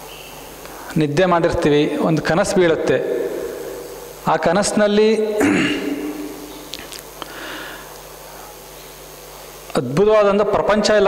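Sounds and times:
faint steady hum: 0.0s - 11.0s
man breathing in through nose: 6.8s - 8.6s.

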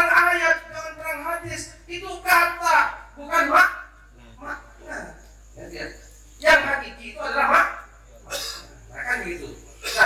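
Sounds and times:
man speaking over pa system: 0.0s - 10.0s.

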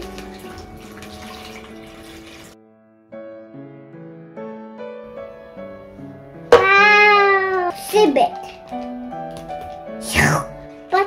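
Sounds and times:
water pouring into plastic bag: 0.0s - 2.6s
light background music: 0.0s - 11.0s.

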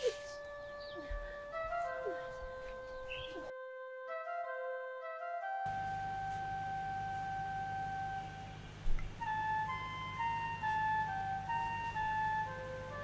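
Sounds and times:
flute-like melody: 0.0s - 13.0s
low drone: 5.7s - 13.0s.

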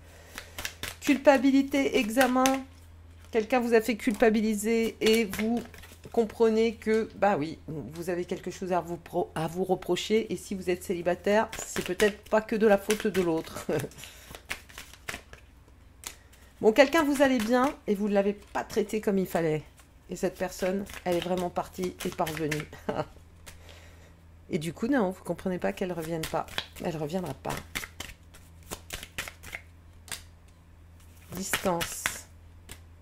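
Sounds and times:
cards being shuffled: 0.2s - 7.2s, 11.2s - 23.6s, 25.7s - 32.9s.

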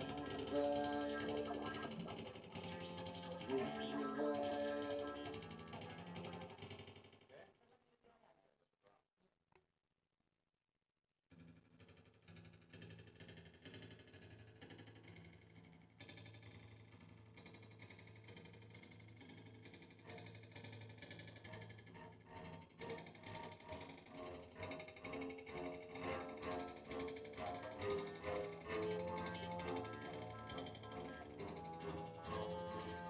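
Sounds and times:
electric guitar through effects: 0.0s - 6.5s, 21.5s - 33.0s
electric bass drone: 0.0s - 6.6s, 21.4s - 33.0s
keyboard: 0.0s - 6.8s, 20.0s - 33.0s.

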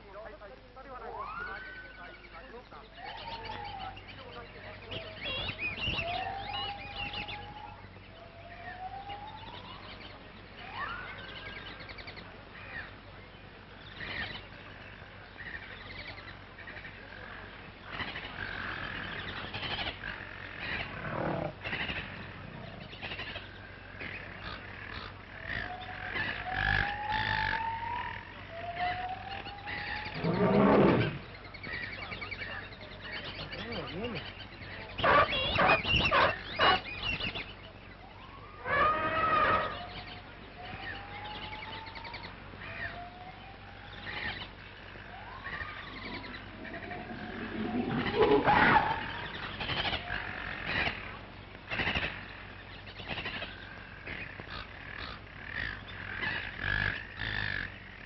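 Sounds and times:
wild animal cries: 20.6s - 22.9s, 25.5s - 31.3s, 35.0s - 36.9s, 38.3s - 40.2s, 45.0s - 50.6s
low soundtrack hum: 36.3s - 52.9s.

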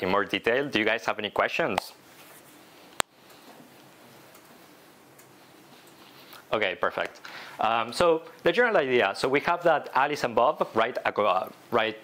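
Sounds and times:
faint irregular ticks: 2.8s - 7.3s.

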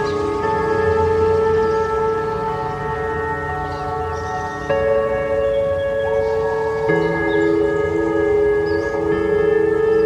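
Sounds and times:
ambient electric guitar chords: 0.0s - 10.0s.

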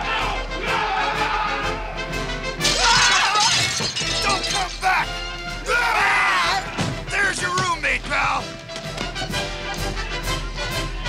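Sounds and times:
orchestral film music: 0.0s - 11.0s
loud shattering crash: 2.6s - 5.5s
men yelling: 2.6s - 8.5s.

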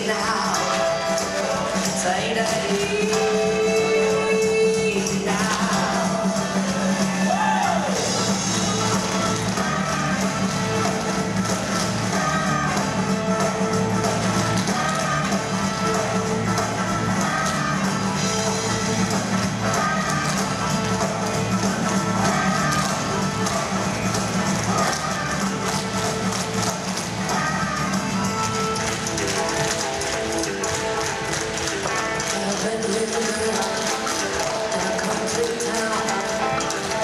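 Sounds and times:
backing music: 0.0s - 37.0s
tap shoes on stage floor: 18.4s - 37.0s.

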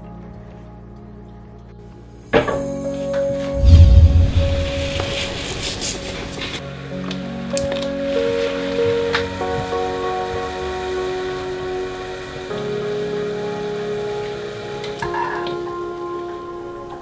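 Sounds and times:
background music with held notes: 0.0s - 17.0s.

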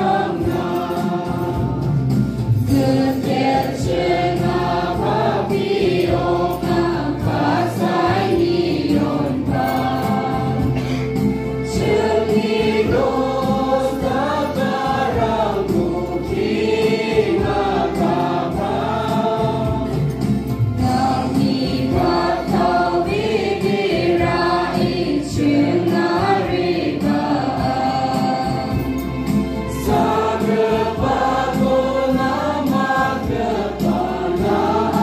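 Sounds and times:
choir singing a hymn: 0.0s - 35.0s
musical accompaniment: 0.0s - 35.0s.

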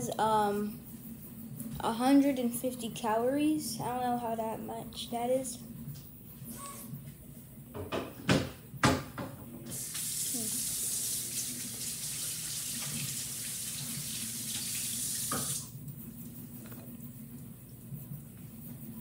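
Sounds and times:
tap water running into sink: 9.7s - 15.7s.

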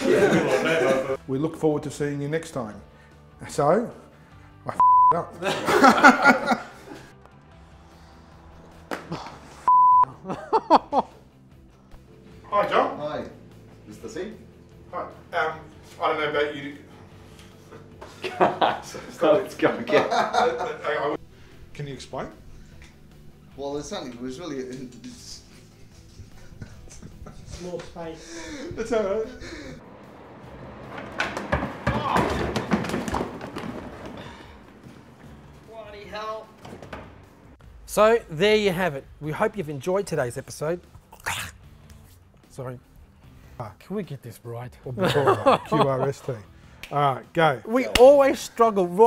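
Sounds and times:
censor bleep: 4.8s - 5.2s, 9.7s - 10.1s.

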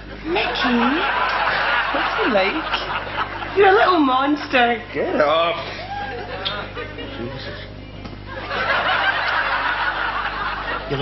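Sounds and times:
audience laughing: 0.3s - 4.1s, 5.6s - 7.7s, 8.3s - 11.0s.

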